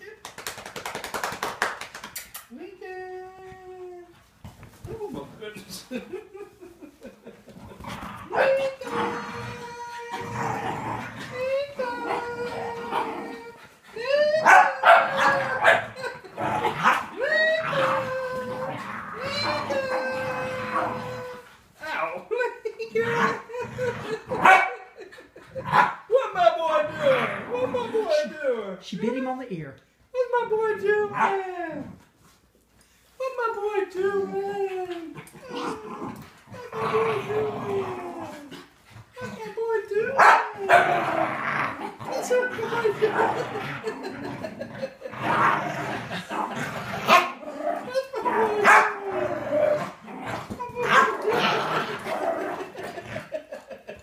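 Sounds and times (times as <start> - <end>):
dog barking: 14.4 - 15.8, 24.4 - 24.8, 40.2 - 40.4.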